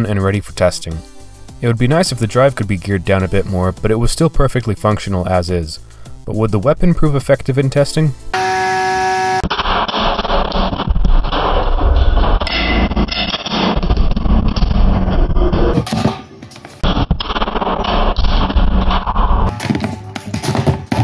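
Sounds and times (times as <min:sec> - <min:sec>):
background music: 0:00.0 - 0:08.6
motor whine: 0:08.4 - 0:09.5.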